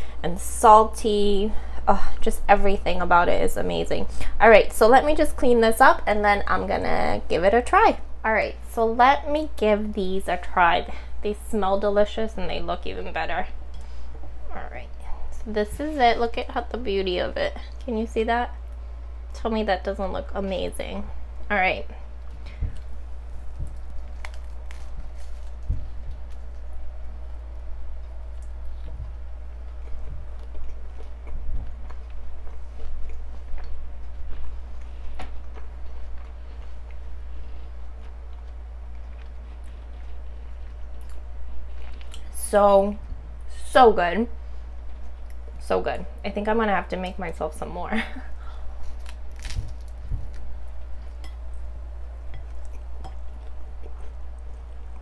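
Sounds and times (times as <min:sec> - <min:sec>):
steady low hum: 0:00.0 - 0:55.0
person chewing toast: 0:22.2 - 0:42.3, 0:48.7 - 0:55.0
toasted bread crunching: 0:22.3 - 0:37.0, 0:48.8 - 0:54.5.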